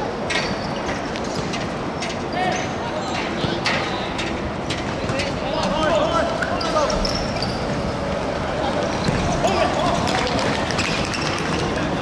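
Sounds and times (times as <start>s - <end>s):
players shouting: 8.6s - 10.7s.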